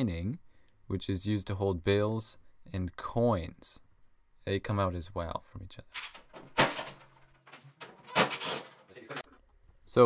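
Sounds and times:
metal box scraping on table: 7.8s - 9.0s.

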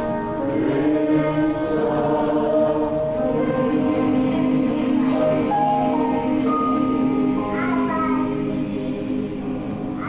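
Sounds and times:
church choir singing: 0.0s - 10.0s.

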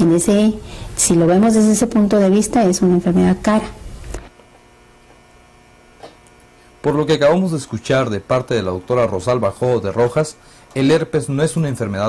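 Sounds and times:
woman's voice: 0.0s - 3.8s
electrical hum: 0.0s - 12.0s.

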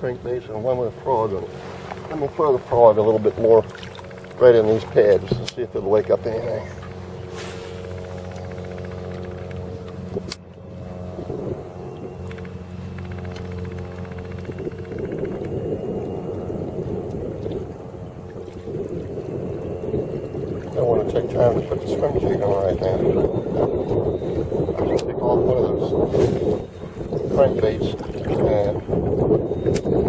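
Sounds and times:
low motor hum: 0.0s - 30.0s
wind buffeting microphone: 0.0s - 30.0s.

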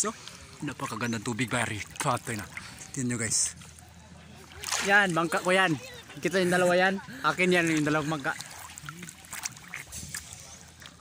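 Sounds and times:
small sharp splashes: 0.0s - 6.4s, 7.3s - 11.0s
seawater lapping and splashing: 0.0s - 11.0s.

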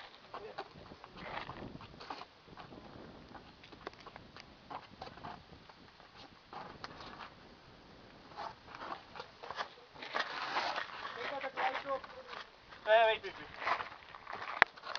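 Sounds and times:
clicks and scrapes: 8.3s - 12.5s, 13.6s - 14.9s.

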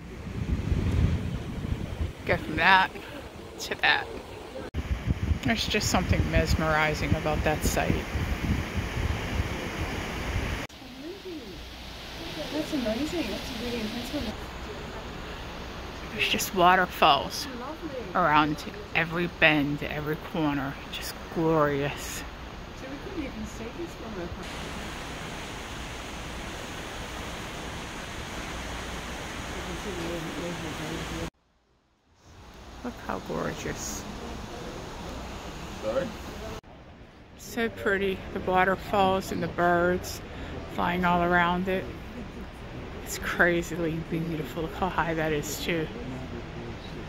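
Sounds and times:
wind buffeting microphone: 0.0s - 10.7s
rushing wind and water: 0.0s - 31.3s, 32.3s - 47.0s
rushing water of ship wake: 4.2s - 16.4s, 22.0s - 31.3s.

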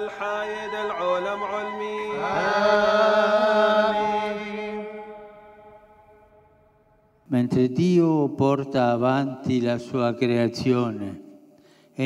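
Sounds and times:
voices chanting long notes: 0.0s - 6.7s.

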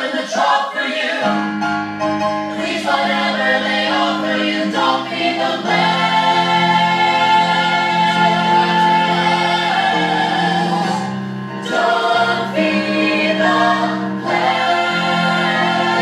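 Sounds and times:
women singing in harmony: 0.0s - 1.3s, 2.6s - 16.0s
musical accompaniment: 0.1s - 16.0s.

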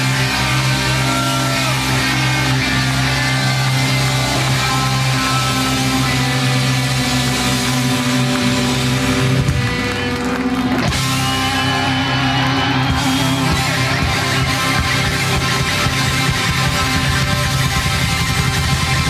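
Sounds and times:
hard rock band playing: 0.0s - 19.0s.

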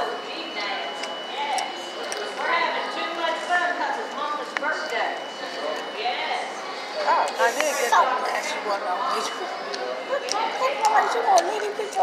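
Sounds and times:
diners chattering: 0.0s - 12.0s.

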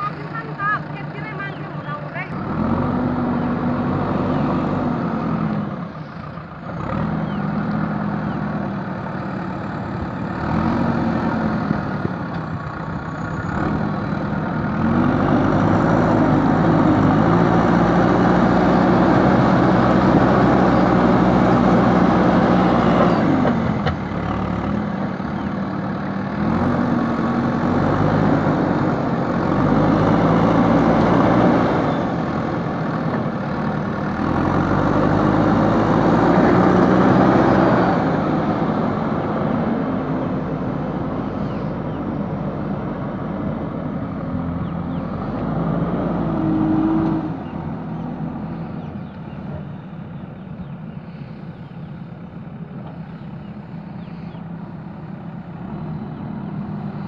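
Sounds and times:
diesel engine revving: 0.0s - 57.0s.

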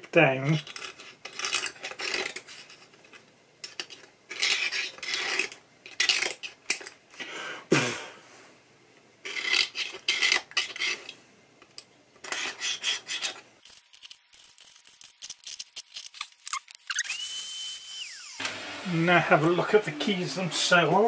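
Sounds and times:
blade scraping wood: 12.2s - 13.4s.

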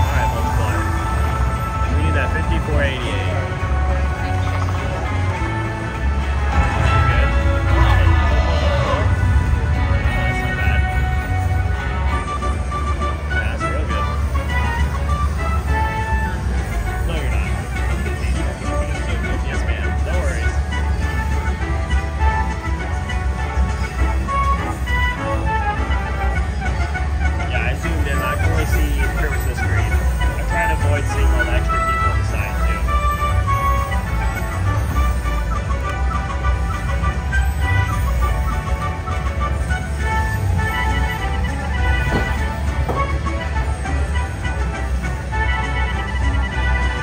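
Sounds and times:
voices: 0.0s - 11.5s, 12.1s - 21.6s, 27.4s - 43.9s
slot machine music: 0.0s - 47.0s
steady casino hum: 0.0s - 47.0s.

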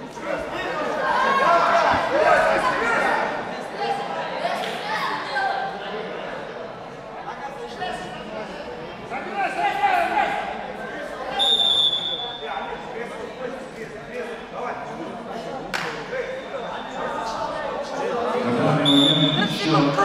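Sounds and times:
referee's whistle blast: 11.4s - 12.4s, 18.8s - 19.6s.

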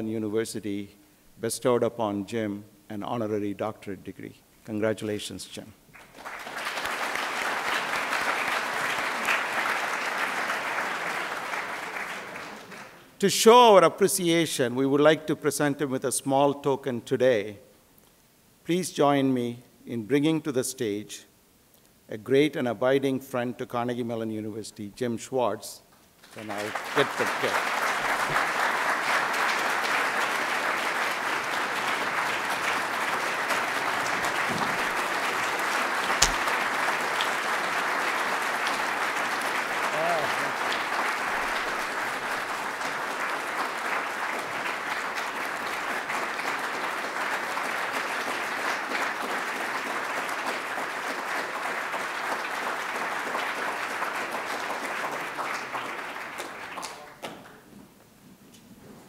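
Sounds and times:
audience applauding: 6.0s - 13.1s, 26.2s - 57.6s
sharp knock: 36.2s - 36.5s.

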